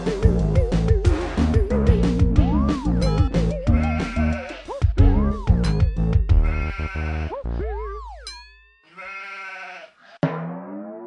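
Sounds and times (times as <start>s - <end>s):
pulsing bass line: 0.0s - 6.9s.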